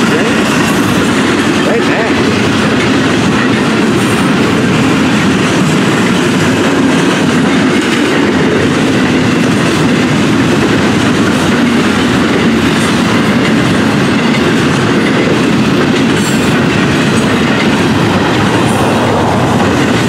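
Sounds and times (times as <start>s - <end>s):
freight train wheels rumbling: 0.0s - 20.0s.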